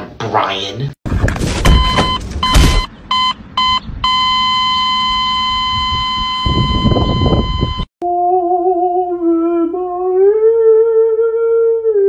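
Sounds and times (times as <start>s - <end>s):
heavy thumps: 1.1s - 2.9s
electronic beeps: 1.7s - 7.9s.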